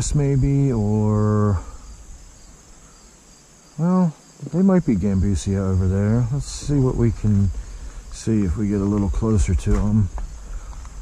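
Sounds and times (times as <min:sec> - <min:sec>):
man speaking: 0:00.0 - 0:01.8, 0:03.8 - 0:10.2
insect chorus: 0:00.0 - 0:11.0.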